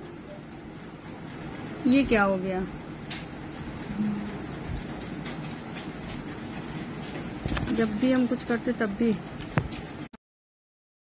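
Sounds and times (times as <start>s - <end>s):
steady background noise: 0.0s - 10.1s.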